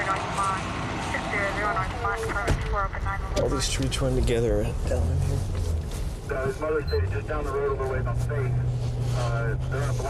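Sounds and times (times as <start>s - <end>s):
vehicle idling hum: 0.2s - 10.0s.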